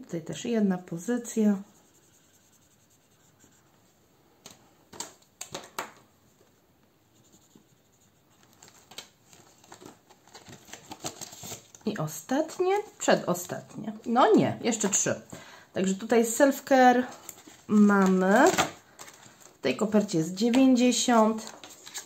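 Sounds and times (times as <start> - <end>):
marker colouring on paper: 1.4 - 3.8, 7.1 - 8.4
plastic sleeves and pages rustling: 4.4 - 6.1, 7.3 - 22.0.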